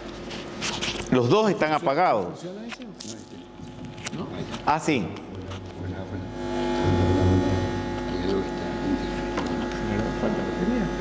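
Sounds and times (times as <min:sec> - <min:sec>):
electrical buzz over low hum: 0:00.0 - 0:11.0.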